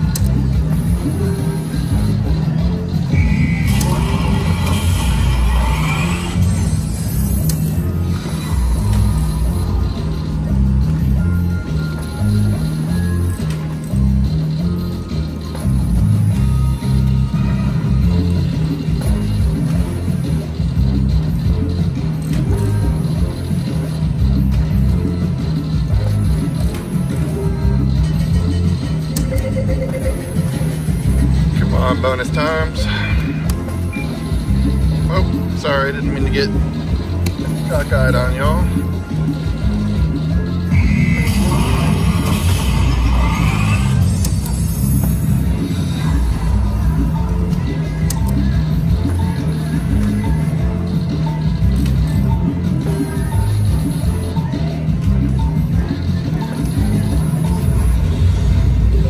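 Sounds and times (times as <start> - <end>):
music with thumping beat: 0.0 - 4.3, 7.4 - 59.0
slot machine spins and chimes: 0.0 - 59.0
run of electronic tones: 28.5 - 30.9.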